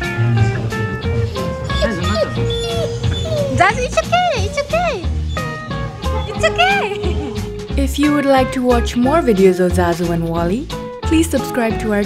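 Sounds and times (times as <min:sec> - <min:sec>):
dog whimpering: 0:00.0 - 0:07.7
background guitar music: 0:00.0 - 0:12.0.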